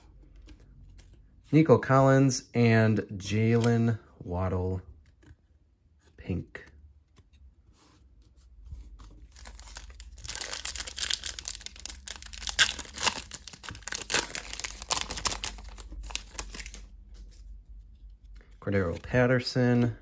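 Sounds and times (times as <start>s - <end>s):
foil wrapper tearing and crinkling: 9.4s - 16.8s.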